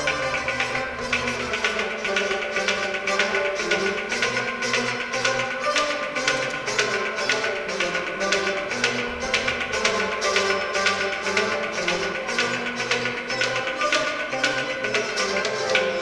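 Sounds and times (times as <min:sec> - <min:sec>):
bowed fiddle: 0:00.0 - 0:16.0
hand percussion steady beat: 0:00.0 - 0:16.0.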